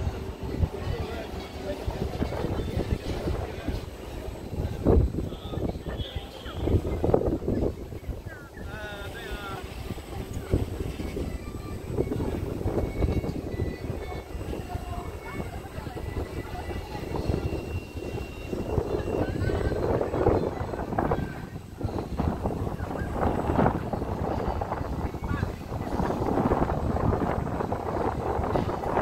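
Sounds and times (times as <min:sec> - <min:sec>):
faint distant voices: 0:00.0 - 0:29.0
wind rumbling on microphone: 0:00.0 - 0:29.0.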